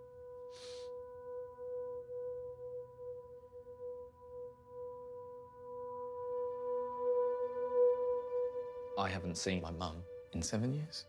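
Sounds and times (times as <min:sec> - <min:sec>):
ambient music ringing tone: 0:00.0 - 0:11.0.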